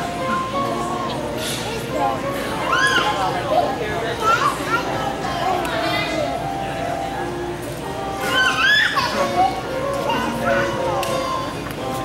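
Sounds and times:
children calling out: 2.5s - 3.4s, 8.1s - 11.6s.

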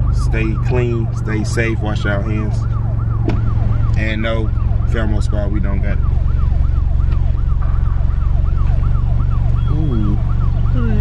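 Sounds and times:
siren yelping: 0.0s - 11.0s.

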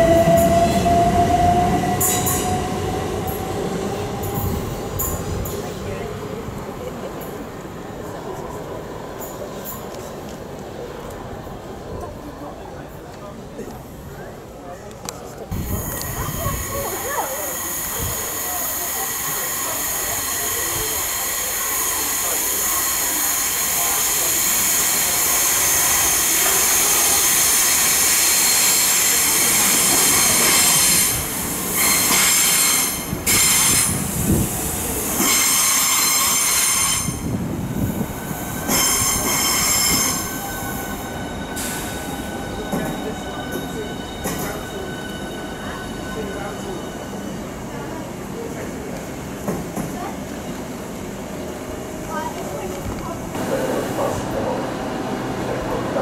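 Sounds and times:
electric train braking: 15.6s - 37.3s.

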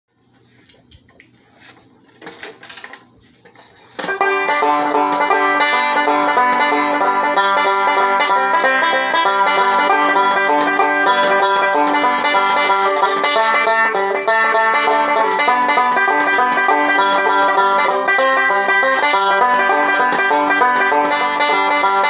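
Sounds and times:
banjo picking: 3.7s - 22.0s.

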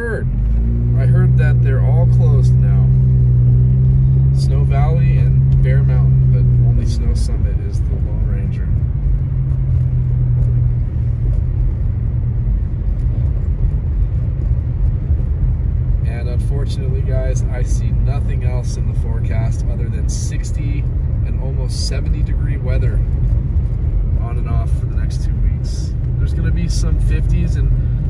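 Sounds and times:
car interior drone: 0.0s - 28.0s
road rumble: 0.0s - 28.0s.

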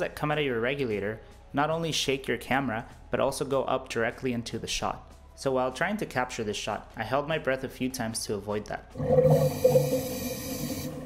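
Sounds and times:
low wavering bubbling: 9.0s - 11.0s.

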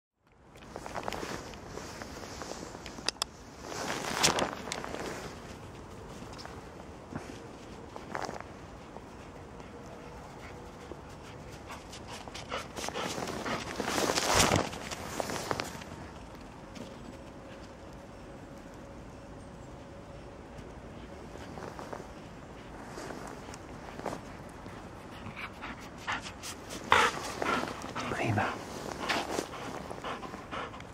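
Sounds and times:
footsteps crunching in snow: 0.6s - 9.4s, 10.7s - 17.6s, 21.1s - 24.9s, 26.3s - 30.6s
dog panting: 8.8s - 14.2s, 20.8s - 30.9s.

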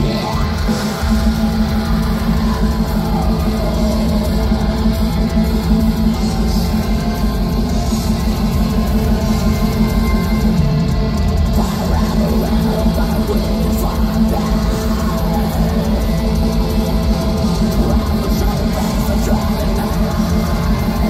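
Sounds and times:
distorted electric guitars: 0.0s - 21.0s
drums: 0.0s - 21.0s.

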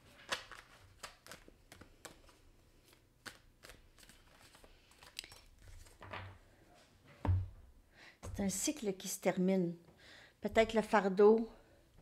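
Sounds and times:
cards being shuffled: 0.0s - 6.2s.

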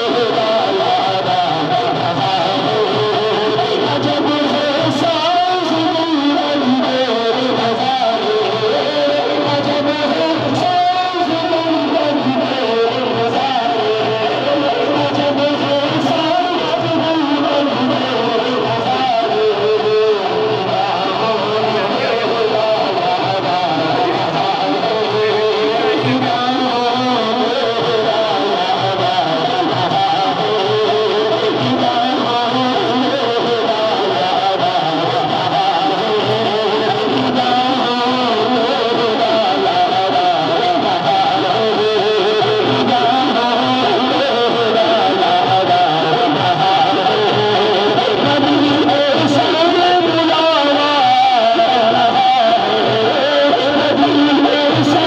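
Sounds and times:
men singing through microphones: 0.0s - 55.0s.

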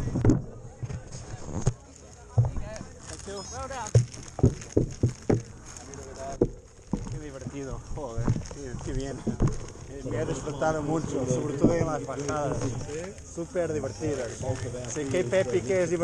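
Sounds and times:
people talking: 0.0s - 4.0s, 7.2s - 16.0s
bike rattling over rough dirt: 0.0s - 16.0s.

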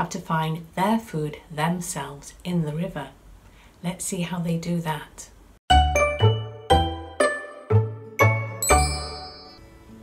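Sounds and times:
musical jingle: 5.7s - 10.0s
high held chime: 8.2s - 9.9s.

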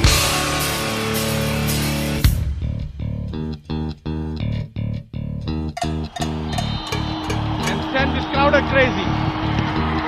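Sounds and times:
rock music with electric guitar: 0.0s - 10.0s.

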